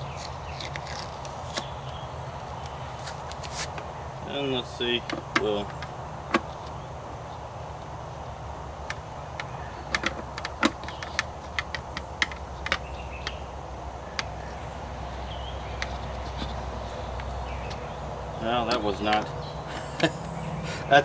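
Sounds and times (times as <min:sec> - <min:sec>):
hard plastic clicks and taps: 0:08.9 - 0:13.4.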